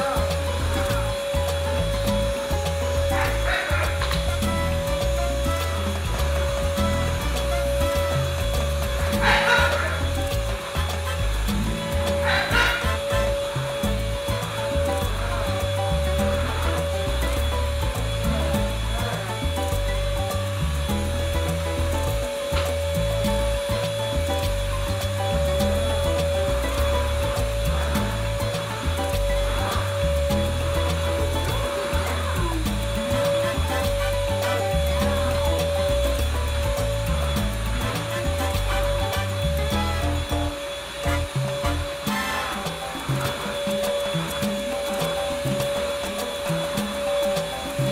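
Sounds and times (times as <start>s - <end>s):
vacuum cleaner motor whine: 0.0s - 38.5s, 39.4s - 47.9s
background music: 0.0s - 47.9s.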